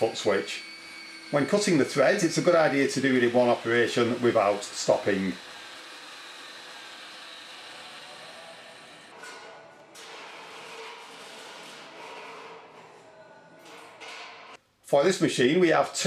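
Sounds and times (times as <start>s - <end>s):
pipe threading machine whirring: 0.0s - 12.8s.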